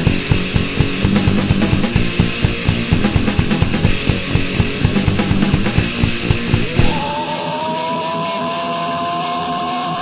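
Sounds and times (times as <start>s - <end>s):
distorted electric guitar note: 0.0s - 10.0s.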